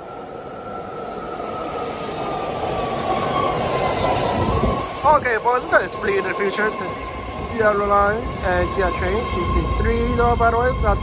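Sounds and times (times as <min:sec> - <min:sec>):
train running noise: 0:00.0 - 0:11.0.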